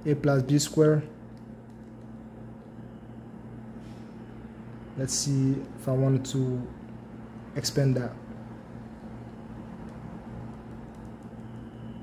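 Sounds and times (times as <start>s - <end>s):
low room hum: 0.0s - 12.0s
calculator keys clicking: 9.8s - 11.6s.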